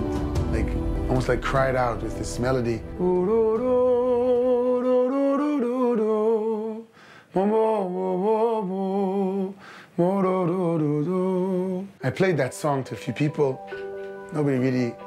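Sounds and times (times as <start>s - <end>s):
man singing slow melody: 0.0s - 12.1s.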